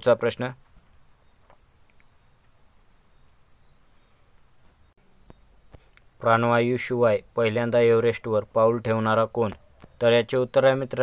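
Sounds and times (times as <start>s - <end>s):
high-pitched insect chirping: 0.0s - 11.0s.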